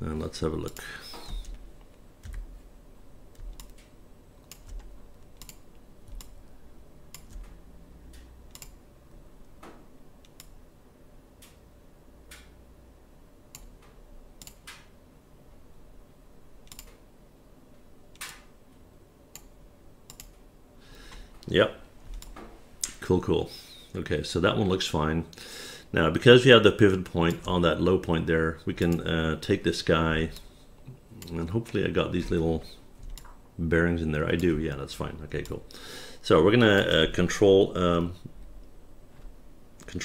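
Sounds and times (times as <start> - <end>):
faint steady hum: 0.0 - 40.0
keyboard and mouse clicks: 0.6 - 2.5, 3.3 - 6.4, 7.1 - 8.8, 9.5 - 10.6, 13.5 - 14.9, 16.6 - 17.0, 18.1 - 18.5, 19.3 - 20.4, 22.1 - 23.0, 33.0 - 33.4.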